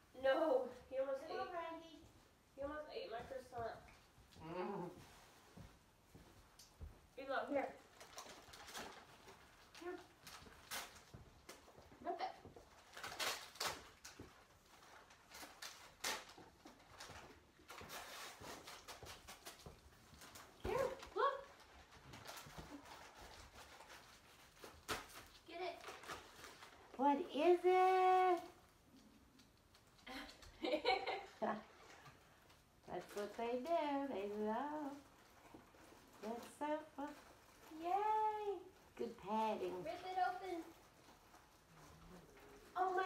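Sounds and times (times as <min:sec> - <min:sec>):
wrapping paper crinkling and tearing: 0:07.6 - 0:11.9, 0:12.5 - 0:30.0, 0:30.8 - 0:43.0.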